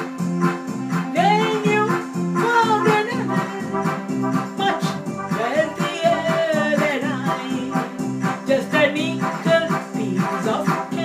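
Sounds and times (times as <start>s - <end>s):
backing beat: 0.0s - 11.0s
pop tune on electronic keyboard: 0.0s - 11.0s
woman singing: 1.1s - 11.0s.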